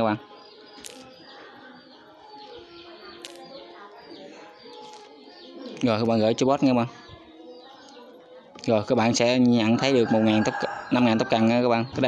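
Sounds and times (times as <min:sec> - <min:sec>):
doves cooing: 0:00.0 - 0:08.5.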